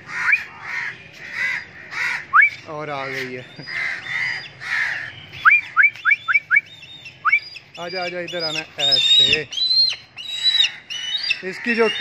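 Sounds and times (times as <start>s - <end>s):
crows cawing: 0.0s - 5.8s, 10.2s - 12.0s.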